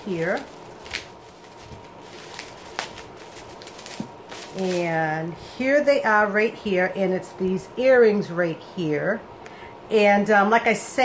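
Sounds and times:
packaging rustling: 0:00.0 - 0:05.1.

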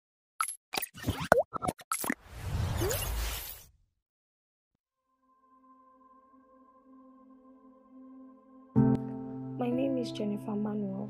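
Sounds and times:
synthetic pops and blips: 0:00.7 - 0:02.2.

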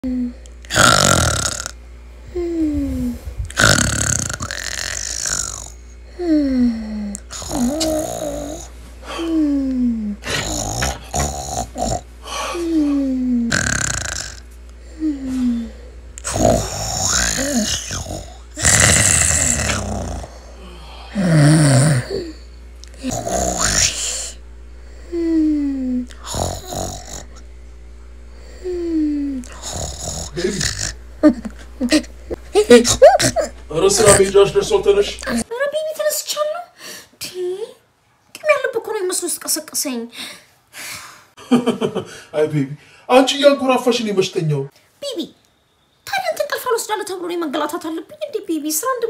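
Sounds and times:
comic snoring with whistle: 0:00.7 - 0:01.8, 0:02.4 - 0:08.7, 0:09.9 - 0:27.5, 0:28.3 - 0:35.5.

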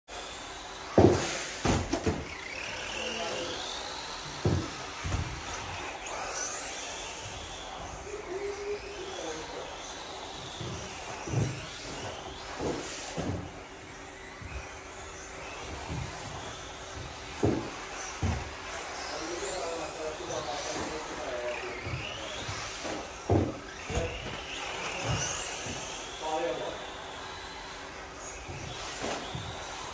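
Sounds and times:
electric toy car motor whining: 0:00.1 - 0:29.9
thud: 0:01.0 - 0:02.4
voices echoing in a hall: 0:19.2 - 0:22.6, 0:23.8 - 0:26.8.

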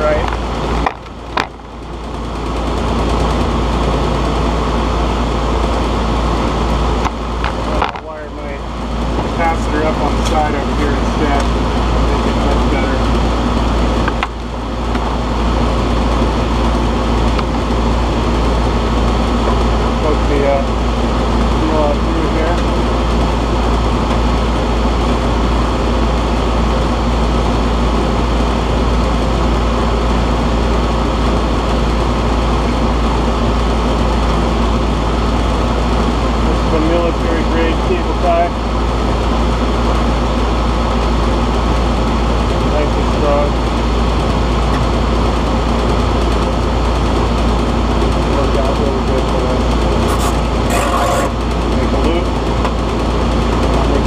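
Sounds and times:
condenser fan droning: 0:00.0 - 0:54.0.

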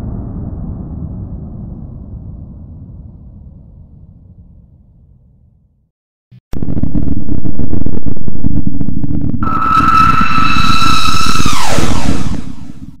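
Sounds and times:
heavy low rumble: 0:06.5 - 0:13.0
high whine sliding down: 0:06.6 - 0:13.0.

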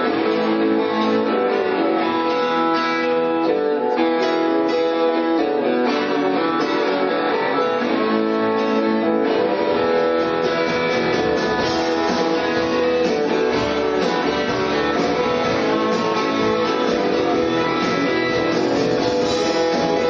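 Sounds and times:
live rock band instrumental: 0:00.0 - 0:20.0.

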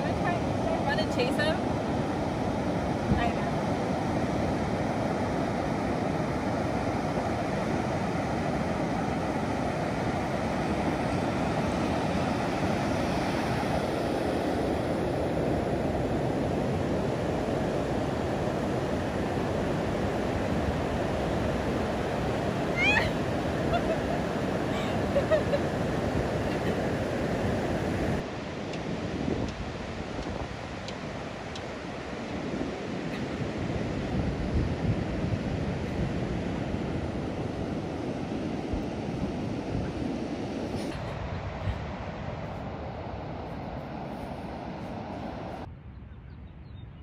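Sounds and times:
ocean surf washing on shore: 0:00.0 - 0:45.7.

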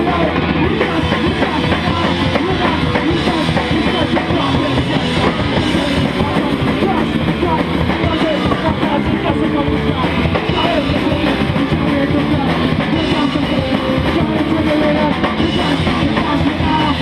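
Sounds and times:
drum kit and cymbals: 0:00.0 - 0:17.0
live band playing rock music: 0:00.0 - 0:17.0.

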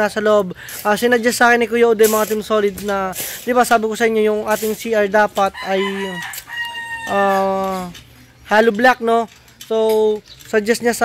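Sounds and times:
rooster crowing: 0:05.4 - 0:07.9.

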